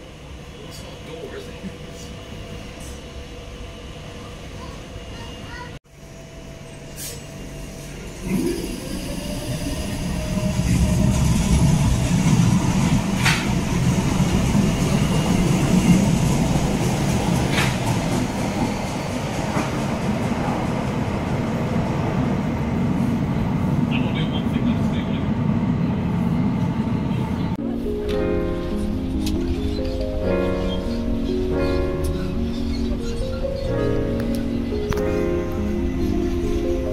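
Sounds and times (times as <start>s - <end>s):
train low rumble: 0.0s - 36.9s
music: 27.6s - 36.9s.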